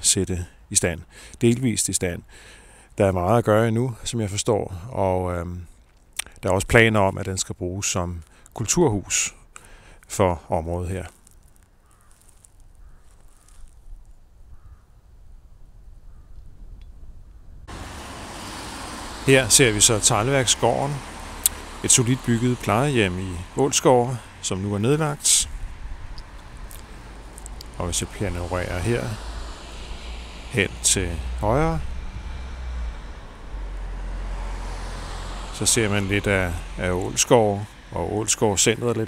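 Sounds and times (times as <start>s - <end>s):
steady hiss of distant traffic: 0.0s - 16.3s, 17.2s - 39.0s
low rumble: 20.9s - 39.0s.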